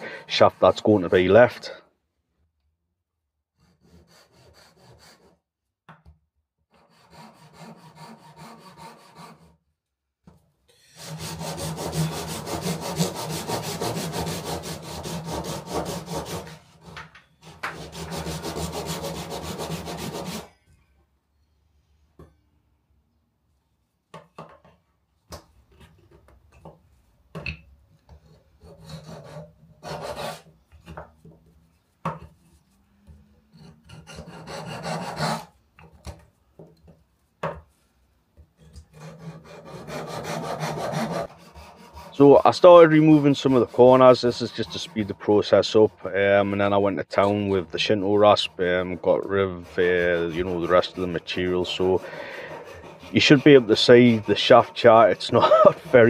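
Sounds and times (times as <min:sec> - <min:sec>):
handsaw cutting wood: 0:03.6 - 0:05.4, 0:06.8 - 0:09.5, 0:10.9 - 0:20.5, 0:28.8 - 0:30.5, 0:33.9 - 0:35.5, 0:38.9 - 0:56.0
wood being scraped: 0:06.8 - 0:09.5, 0:10.8 - 0:20.5, 0:28.6 - 0:30.5, 0:33.6 - 0:35.5, 0:38.6 - 0:56.0.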